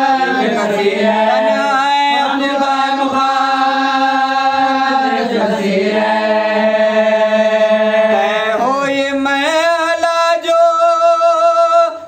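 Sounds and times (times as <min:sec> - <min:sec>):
man chanting a lament: 0:00.0 - 0:12.0.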